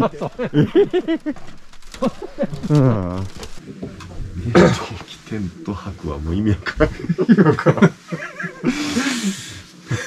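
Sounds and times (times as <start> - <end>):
man laughing: 0.0 - 1.4, 2.0 - 3.2, 6.6 - 10.0
breathy hiss: 8.1 - 10.0.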